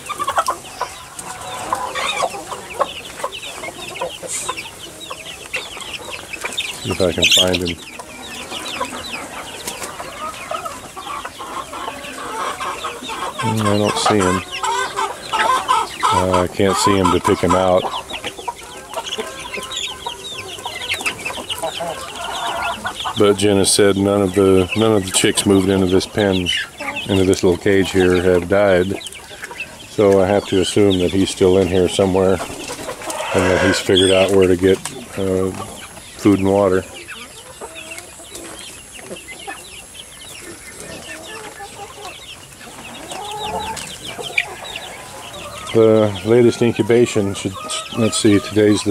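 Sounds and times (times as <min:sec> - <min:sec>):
chicken calls: 0:00.0 - 0:48.9
chicks peeping: 0:00.0 - 0:48.9.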